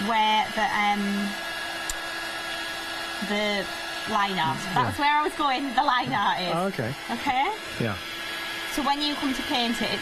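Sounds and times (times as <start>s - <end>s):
heat gun blowing air: 0.1s - 10.0s.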